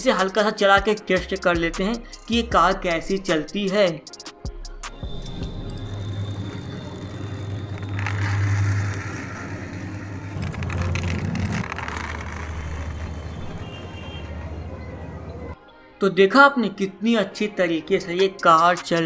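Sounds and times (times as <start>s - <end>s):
toy car rolling on concrete: 6.3s - 14.2s.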